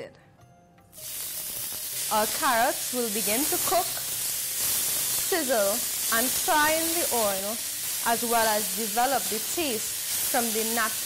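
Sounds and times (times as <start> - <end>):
carrots sizzling in hot oil: 0.9 - 11.0.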